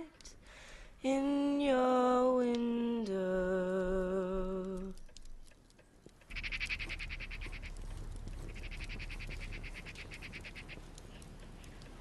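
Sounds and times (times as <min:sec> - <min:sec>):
animal trilling call: 0:06.3 - 0:07.8.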